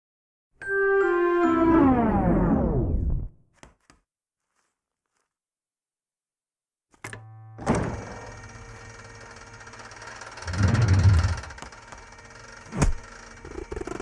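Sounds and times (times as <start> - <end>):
steady low hum: 7.8 - 14.0.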